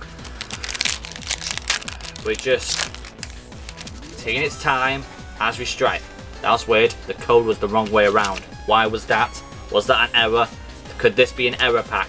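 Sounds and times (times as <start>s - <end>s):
foil wrapper crinkling and tearing: 0.0s - 4.2s
background music with low beat: 0.0s - 12.0s.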